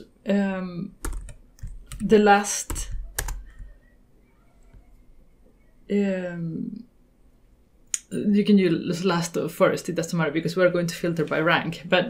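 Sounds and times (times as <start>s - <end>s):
keyboard keystrokes: 1.0s - 3.7s.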